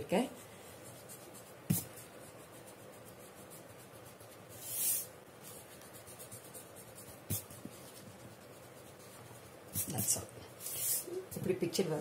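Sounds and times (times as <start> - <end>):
eraser rubbing on paper: 0.8 - 11.2.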